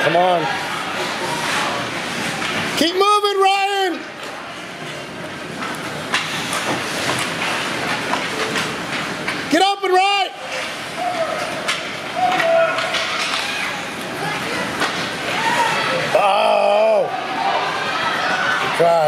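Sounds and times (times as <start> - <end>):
arena noise: 0.0 - 19.0
hockey sticks and puck clacking: 5.5 - 9.6, 10.4 - 15.2
spectator shouting: 12.1 - 12.9.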